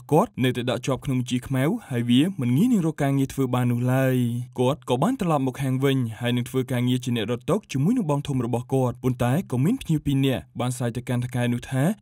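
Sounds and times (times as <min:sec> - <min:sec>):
person narrating: 0:00.0 - 0:12.0.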